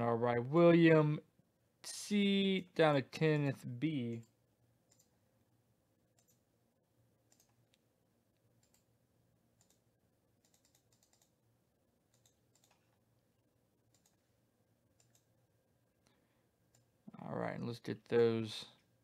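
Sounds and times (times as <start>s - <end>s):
computer keyboard and mouse clicks: 4.9s - 5.1s, 6.2s - 6.4s, 7.3s - 7.8s, 8.6s - 8.9s, 9.6s - 9.8s, 10.4s - 11.4s, 12.1s - 13.0s, 13.9s - 14.2s, 15.0s - 15.3s.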